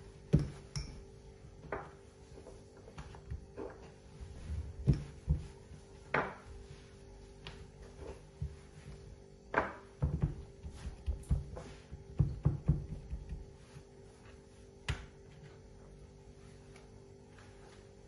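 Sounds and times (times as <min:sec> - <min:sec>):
fingertips thumping dough: 0:00.2 - 0:15.5
rolling pin on wooden board: 0:01.6 - 0:15.1.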